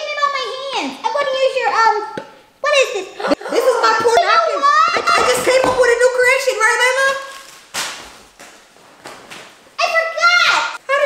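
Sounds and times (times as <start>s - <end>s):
apron rustling: 5.0s - 9.8s.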